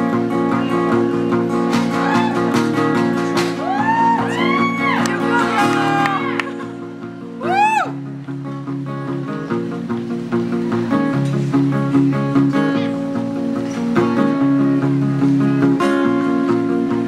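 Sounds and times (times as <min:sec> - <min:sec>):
strummed acoustic guitars: 0:00.0 - 0:17.0.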